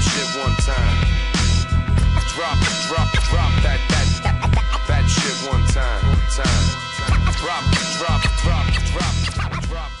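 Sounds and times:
hip hop beat with heavy bass: 0:00.0 - 0:10.0
record scratching: 0:06.4 - 0:09.6.

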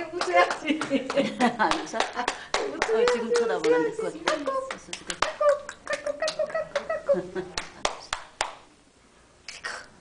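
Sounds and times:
people talking: 0:00.0 - 0:07.9
hand clapping: 0:00.2 - 0:08.7.

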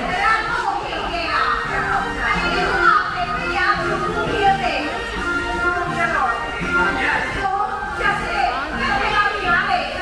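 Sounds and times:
crowd of voices chattering: 0:00.0 - 0:10.0
music: 0:00.0 - 0:10.0.

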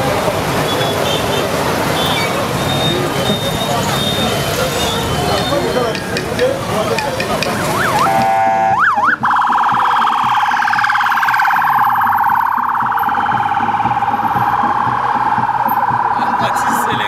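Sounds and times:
electronic siren wailing: 0:07.6 - 0:17.0.

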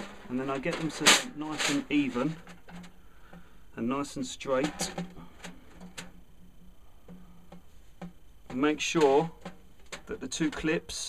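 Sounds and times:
low hum: 0:00.0 - 0:11.0.

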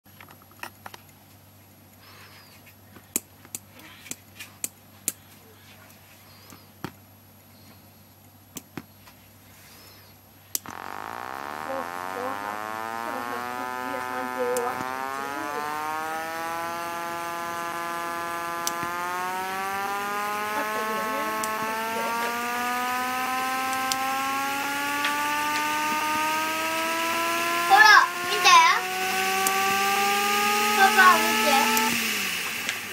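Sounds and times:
electric motor whine from speaker: 0:10.6 - 0:32.9.

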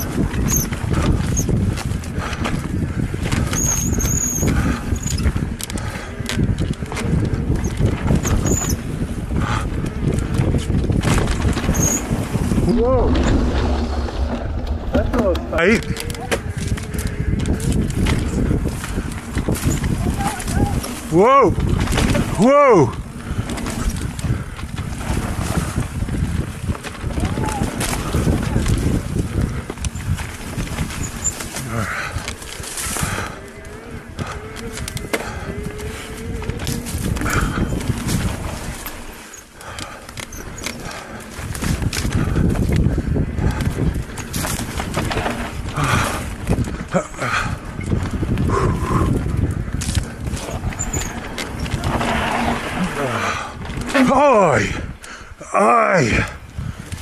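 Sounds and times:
bike rattling over bumps: 0:00.0 - 0:55.4, 0:56.0 - 0:57.0
wind rushing over microphone: 0:00.0 - 0:57.0.

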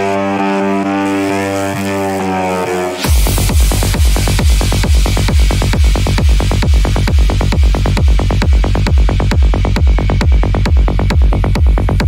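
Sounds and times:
buzzy low synth drone: 0:00.0 - 0:12.0.

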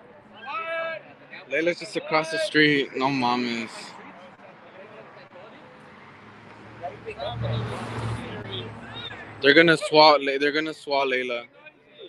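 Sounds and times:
car driving past: 0:05.8 - 0:09.4.

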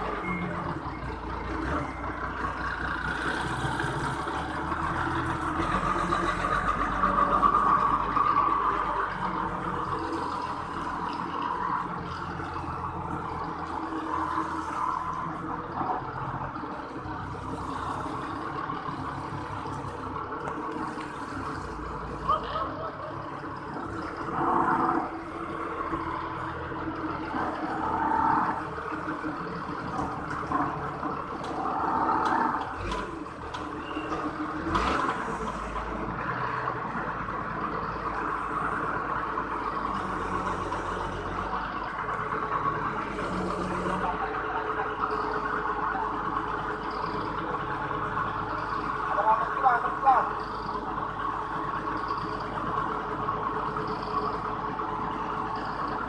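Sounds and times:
forklift engines running: 0:00.0 - 0:56.0.

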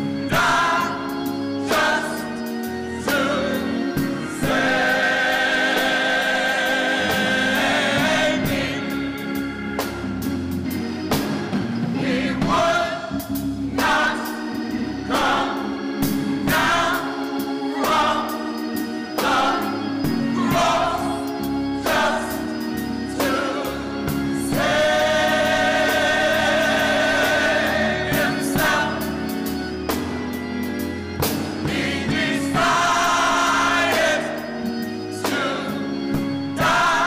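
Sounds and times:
gospel choir singing: 0:00.0 - 0:37.0
keyboard chords: 0:00.0 - 0:37.0.

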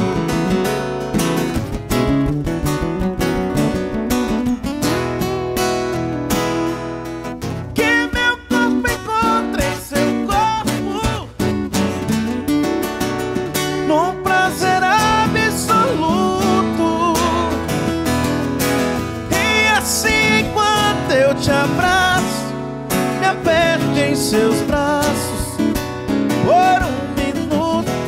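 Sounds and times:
acoustic guitars: 0:00.0 - 0:28.0
man singing: 0:07.7 - 0:11.6, 0:13.6 - 0:18.0, 0:19.1 - 0:28.0.

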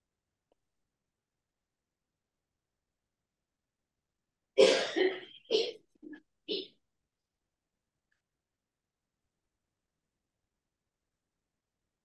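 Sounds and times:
person coughing: 0:04.6 - 0:05.9.

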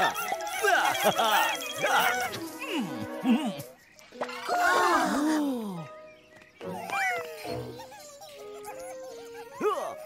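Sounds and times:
cartoon creatures squeaking: 0:00.0 - 0:05.4, 0:06.6 - 0:10.0
light background music: 0:00.0 - 0:10.0.

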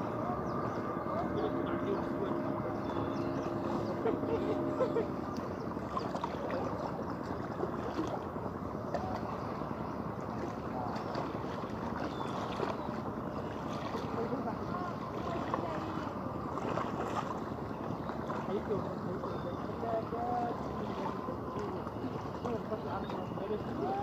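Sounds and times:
faint distant voices: 0:00.0 - 0:24.0
water lapping at rocky shore: 0:00.0 - 0:24.0
wind: 0:00.0 - 0:24.0.

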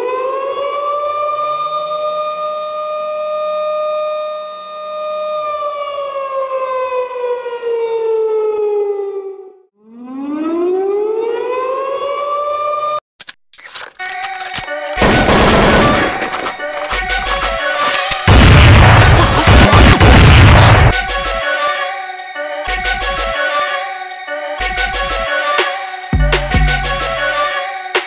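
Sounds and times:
siren wailing: 0:00.0 - 0:13.0, 0:15.0 - 0:21.8.

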